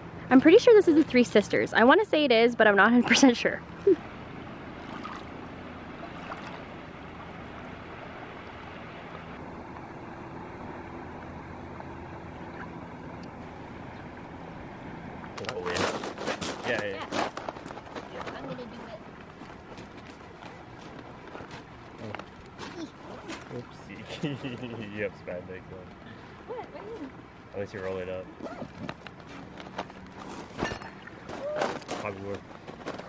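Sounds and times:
river running over cobbles: 0.3 - 33.0
footsteps on cobbles: 15.8 - 22.8, 31.3 - 33.0.

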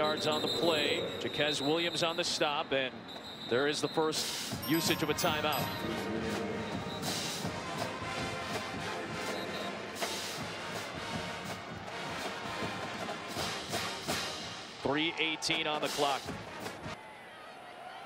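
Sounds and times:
stadium crowd noise: 0.0 - 18.0
music playing: 4.6 - 14.8.

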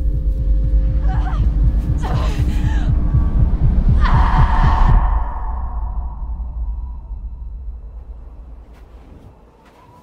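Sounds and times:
deep drone: 0.0 - 8.7
low throbbing pulse: 0.0 - 8.7.

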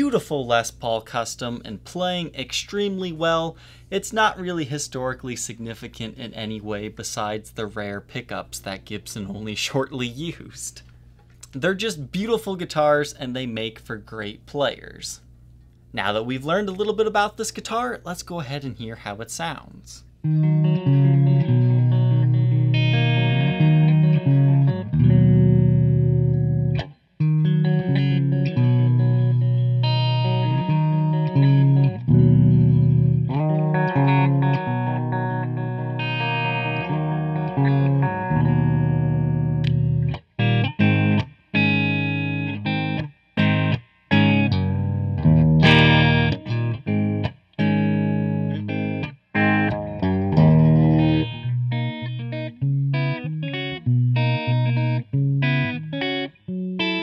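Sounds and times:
clean electric guitar chords: 20.2 - 57.0.

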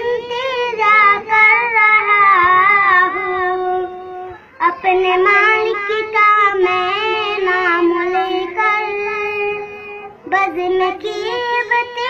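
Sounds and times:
boy singing unaccompanied: 0.0 - 12.0.

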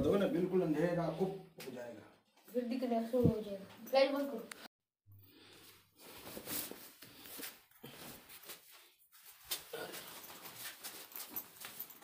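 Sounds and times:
faint rustling and scuffs: 5.5 - 12.0.

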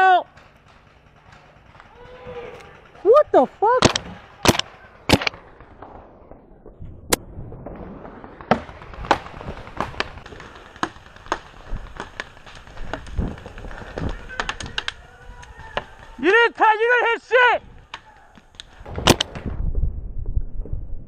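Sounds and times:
paintball markers firing: 0.0 - 6.5, 8.0 - 16.4, 17.7 - 19.5.

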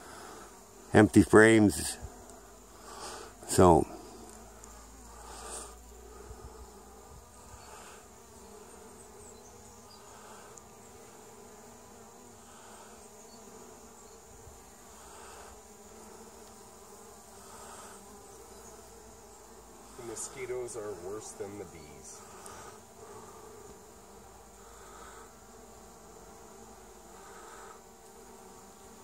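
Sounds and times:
bees buzzing: 0.0 - 29.0.

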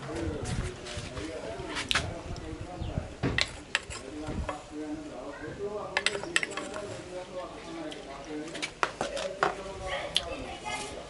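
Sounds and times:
plastic spoon scraping and tapping: 3.4 - 4.1, 6.0 - 6.9.

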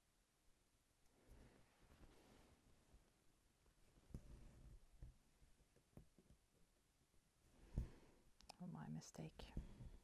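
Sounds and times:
woman whispering: 8.5 - 9.8.

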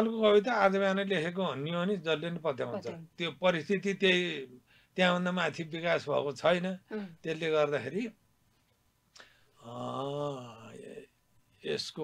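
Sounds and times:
man drawing out low vowel: 9.6 - 11.1.

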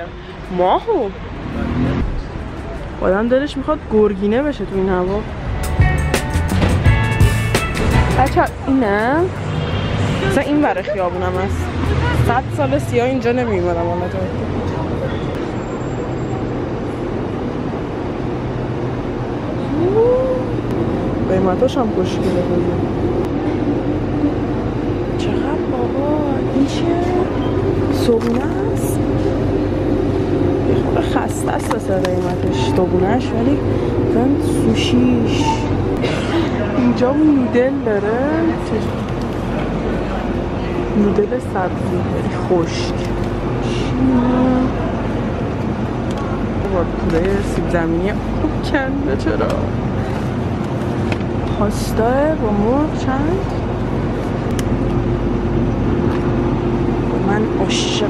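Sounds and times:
refrigeration and ventilation hum: 16.5 - 58.0
supermarket background rumble: 18.7 - 58.0.

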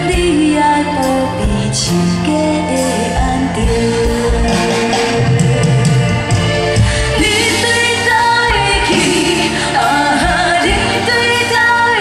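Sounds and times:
women singing a slow ballad: 0.0 - 5.7, 6.8 - 12.0
live band playing: 0.0 - 12.0.

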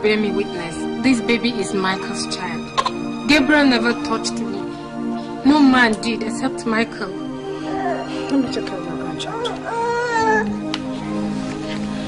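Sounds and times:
background music: 0.0 - 12.0
baby crying: 2.7 - 3.8, 7.6 - 8.2, 9.3 - 10.7.

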